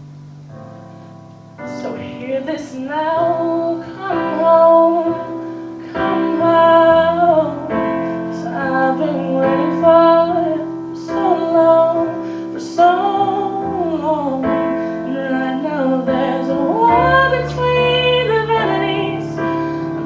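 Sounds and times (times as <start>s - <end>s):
electronic keyboard chords: 0.0s - 20.0s
woman singing a pop ballad: 1.7s - 20.0s.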